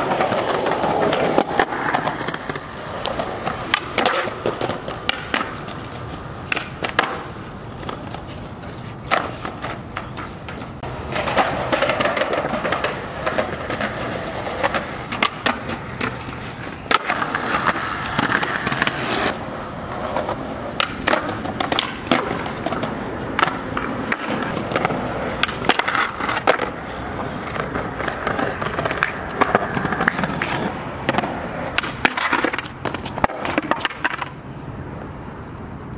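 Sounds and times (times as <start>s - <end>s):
skateboard clacks: 0.0s - 35.9s
skateboard wheels rolling on concrete: 0.0s - 35.9s.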